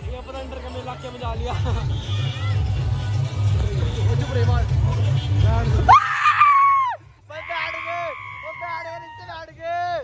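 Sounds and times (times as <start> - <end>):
music with heavy bass: 0.0 - 10.0.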